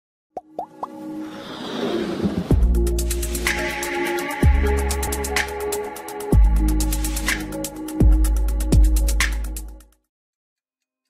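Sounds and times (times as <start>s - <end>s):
quick pops rising in pitch: 0.4s - 1.0s
whoosh: 1.2s - 3.6s.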